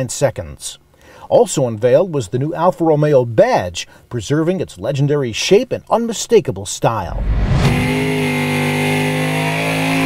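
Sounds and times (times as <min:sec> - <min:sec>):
engine at high revs: 0:07.1 - 0:10.0.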